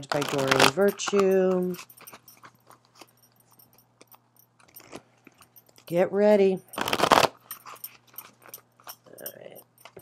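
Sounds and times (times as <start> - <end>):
cards being shuffled: 6.8 - 7.8.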